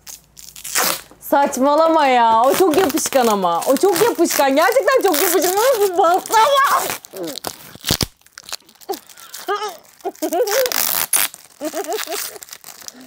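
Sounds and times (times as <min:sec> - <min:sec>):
packing tape ripping: 0:00.0 - 0:13.0.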